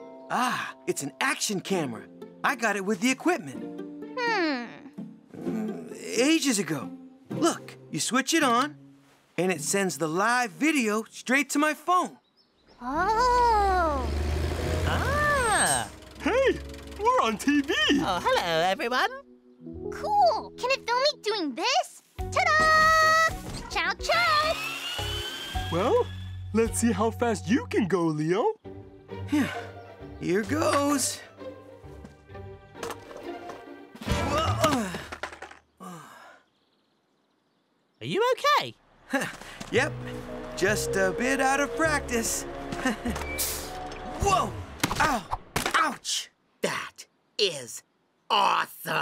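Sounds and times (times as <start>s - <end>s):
cartoon background music: 0.0s - 10.3s, 12.9s - 34.9s, 39.8s - 44.8s
boy crying out: 4.2s - 4.9s, 12.8s - 14.1s, 14.9s - 15.7s
low engine hum: 13.2s - 18.2s.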